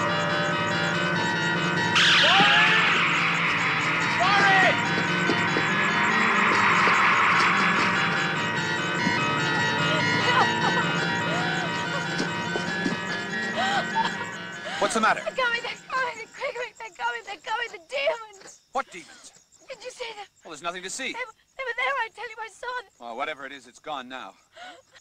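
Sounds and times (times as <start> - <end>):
low drone: 0.0 - 15.9
high swell: 0.0 - 16.3
short arching cries: 1.9 - 16.3.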